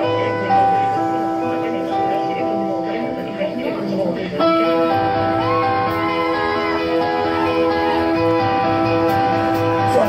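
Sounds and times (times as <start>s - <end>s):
sustained keyboard chords: 0.0s - 10.0s.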